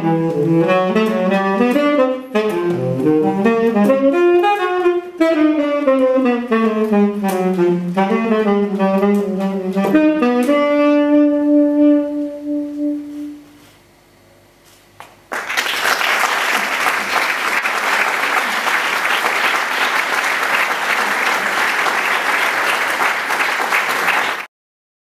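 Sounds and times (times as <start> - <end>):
tenor saxophone long note: 0.0 - 13.8
audience applause: 15.3 - 24.5.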